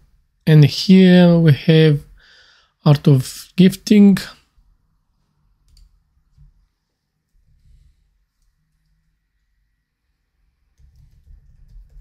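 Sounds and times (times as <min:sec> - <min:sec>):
man speaking: 0:00.5 - 0:02.1, 0:02.8 - 0:04.4.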